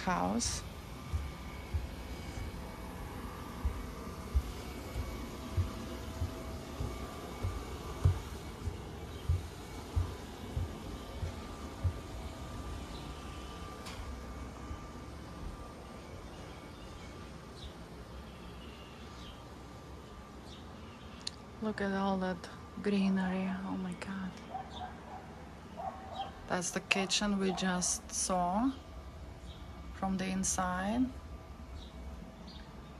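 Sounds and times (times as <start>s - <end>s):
footsteps on wooden deck: 0.0s - 14.2s
faint steady hum: 0.0s - 32.9s.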